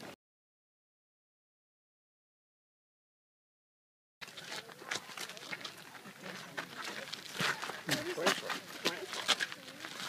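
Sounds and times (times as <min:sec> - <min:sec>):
faint voices: 0:04.2 - 0:10.0.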